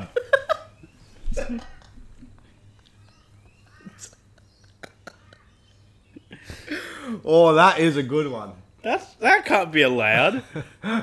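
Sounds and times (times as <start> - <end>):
man laughing breathily: 0.0 - 7.2, 10.4 - 11.0
faint low hum: 0.0 - 11.0
man speaking: 7.2 - 10.4.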